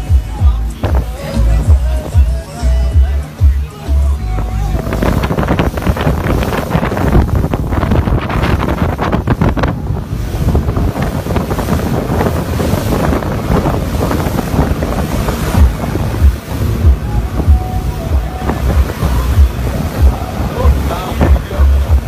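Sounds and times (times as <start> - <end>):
wind buffeting microphone: 0.0 - 3.5, 4.2 - 22.0
low thumps: 0.0 - 22.0
rushing water and spray: 0.0 - 22.0.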